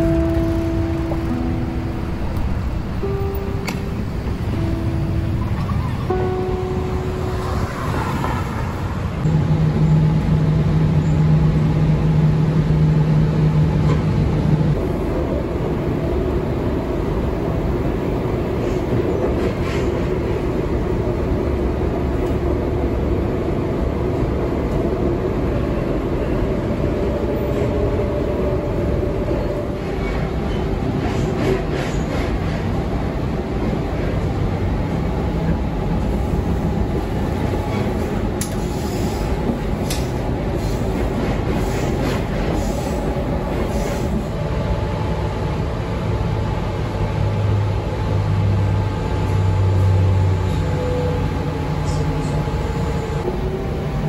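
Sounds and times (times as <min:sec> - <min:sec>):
train carriage rumble: 0:00.0 - 0:54.0.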